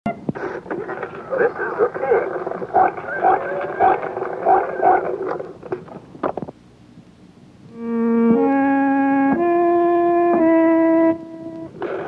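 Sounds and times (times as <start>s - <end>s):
muffled voice: 0.6s - 5.5s
music: 7.6s - 12.0s.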